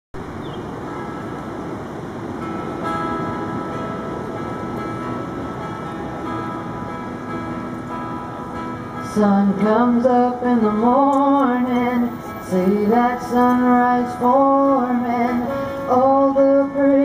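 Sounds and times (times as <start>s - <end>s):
acoustic guitar playing: 0.2s - 17.0s.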